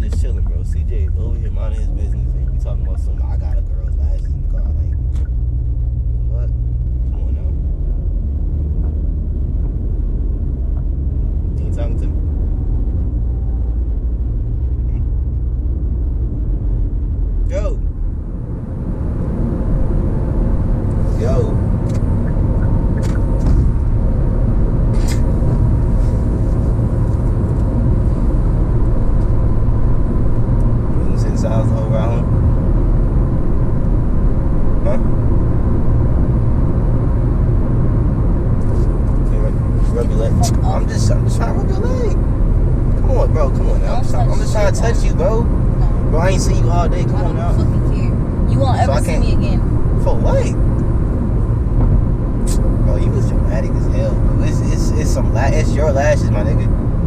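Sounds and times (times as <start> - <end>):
man talking indistinctly: 0.0 - 5.2, 6.2 - 6.5, 7.1 - 7.6, 11.6 - 12.2, 17.5 - 17.8, 21.1 - 21.6, 30.9 - 32.3, 34.8 - 35.1, 39.2 - 42.2, 43.0 - 47.9, 48.6 - 49.4, 50.0 - 50.6, 52.5 - 56.7
car road and engine rumble: 0.0 - 57.0.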